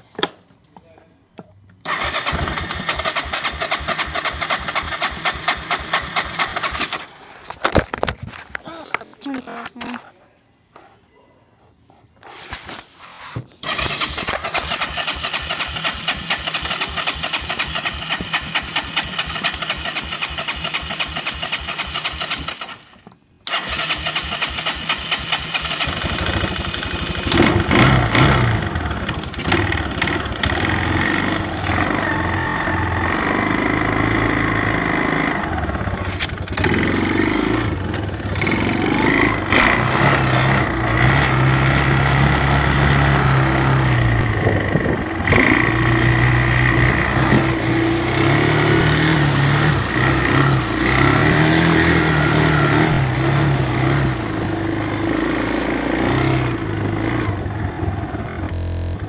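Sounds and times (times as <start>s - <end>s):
engine starter cranking: 1.8s - 7.4s, 13.6s - 52.1s
engine running and revving: 23.5s - 59.0s.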